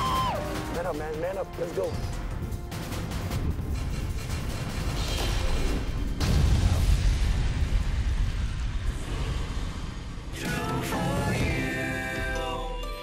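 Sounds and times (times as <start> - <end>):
deep boom with low rumble: 6.1 - 10.4.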